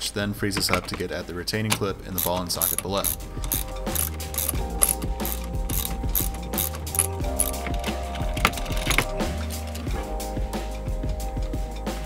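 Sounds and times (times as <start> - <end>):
background music: 0.0 - 12.0
socket ratchet wrench clicking: 1.7 - 9.1.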